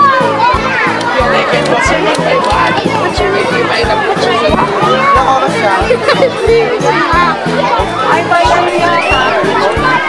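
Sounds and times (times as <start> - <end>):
children shouting and chattering: 0.0 - 10.0
music with steady beat: 0.0 - 10.0.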